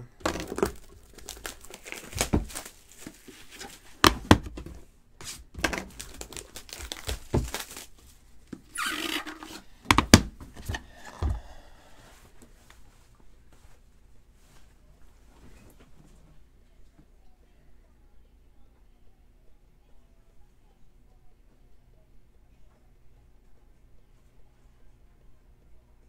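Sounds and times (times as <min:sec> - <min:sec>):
plastic wrap crinkling and tearing: 0:00.2 - 0:09.6
cardboard packaging handled: 0:00.2 - 0:10.9.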